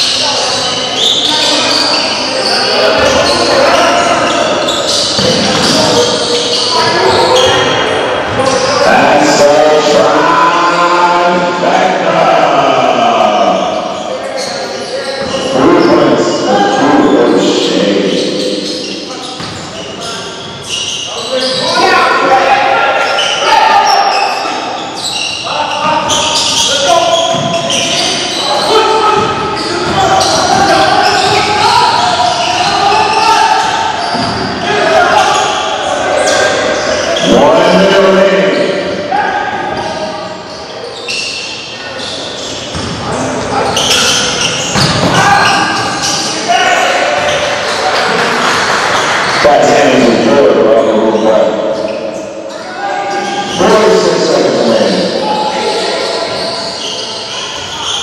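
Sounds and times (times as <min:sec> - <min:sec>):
indistinct voices: 0:00.0 - 0:58.0
basketball bouncing on wooden floor: 0:42.7 - 0:43.0, 0:44.7 - 0:45.2.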